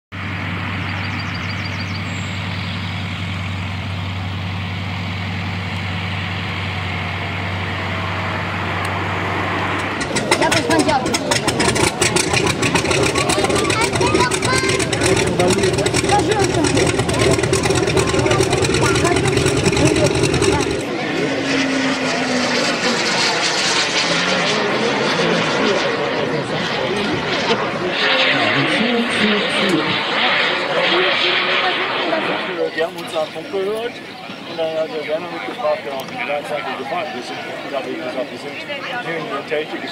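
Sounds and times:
low engine-like hum: 0.1 - 39.9
outdoor noise: 0.1 - 39.9
voices: 7.4 - 39.9.

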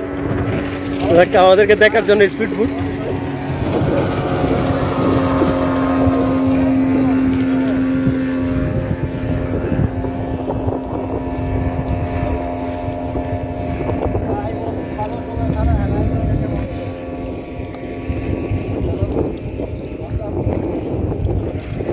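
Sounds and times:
outboard motor running: 0.0 - 21.9
wind buffeting microphone: 0.0 - 21.9.

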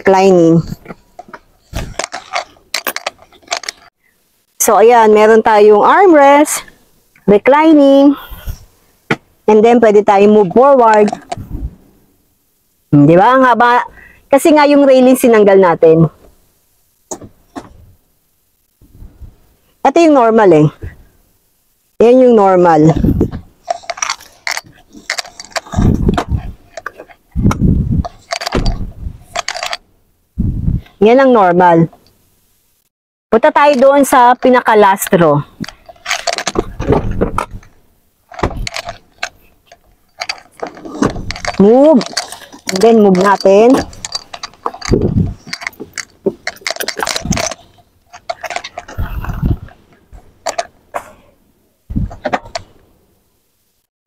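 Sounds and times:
rustling of person moving: 0.0 - 12.9, 13.6 - 53.9
seat adjustment clicks and knocks: 17.1 - 17.9, 23.1 - 29.8, 38.3 - 39.5, 40.2 - 50.7
dull thumps: 35.6 - 37.7, 38.3 - 39.4.

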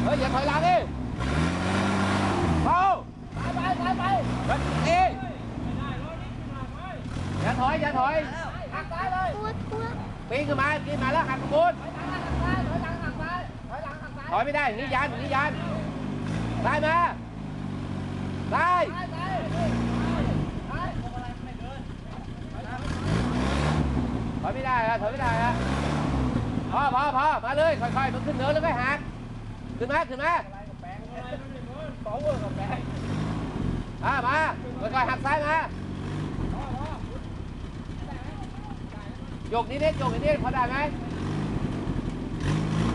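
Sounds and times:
truck engine revving under load: 0.0 - 42.9.

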